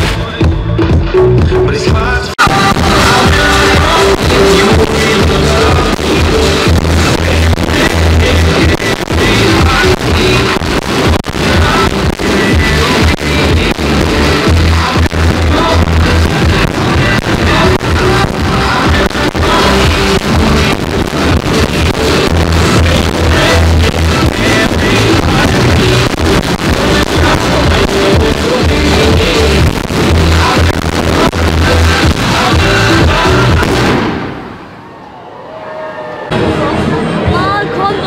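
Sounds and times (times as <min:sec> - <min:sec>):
loud music with deep bass: 0:00.0 - 0:34.3
crowd voices: 0:00.0 - 0:38.0
fireworks bangs and crackles: 0:02.4 - 0:34.7.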